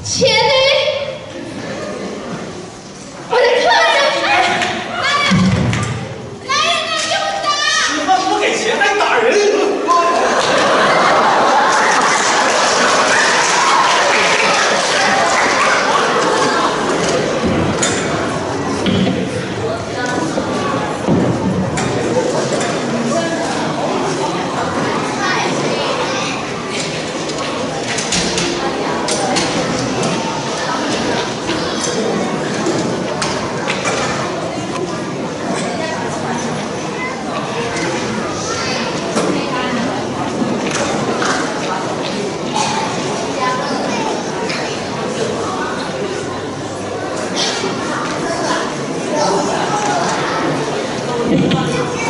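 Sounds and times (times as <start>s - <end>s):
crowd talking and calling out: 0.0s - 52.0s.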